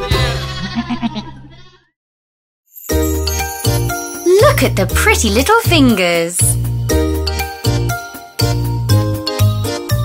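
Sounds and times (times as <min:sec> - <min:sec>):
music: 0:00.0 - 0:00.6, 0:02.7 - 0:10.0
cartoon sheep bleat: 0:00.1 - 0:01.9.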